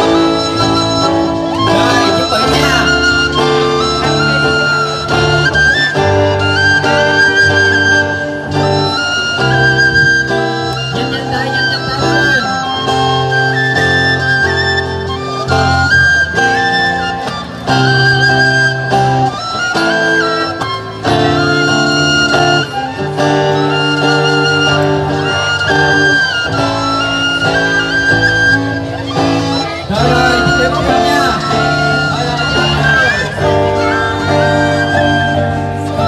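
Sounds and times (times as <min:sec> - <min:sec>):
bamboo flute melody: 0:00.0 - 0:36.0
guitar accompaniment: 0:00.0 - 0:36.0.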